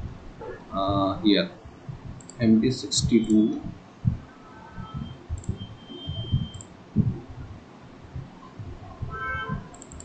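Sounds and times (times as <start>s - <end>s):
mouse and keyboard clicking: 2.2s - 3.6s, 5.4s - 5.6s, 9.7s - 10.0s.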